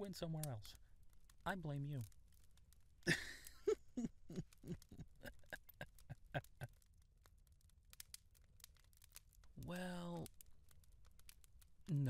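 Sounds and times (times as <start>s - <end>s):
man chuckling softly: 3.1s - 6.8s.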